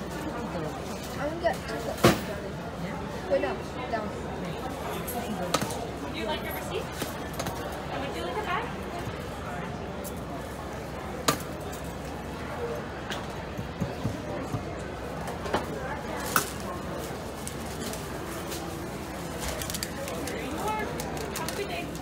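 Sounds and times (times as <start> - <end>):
murmur of voices: 0.0 - 22.0.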